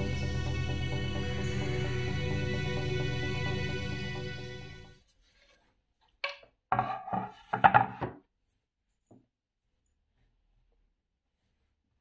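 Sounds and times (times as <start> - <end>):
wooden cutting board knocks: 6.8 - 8.2.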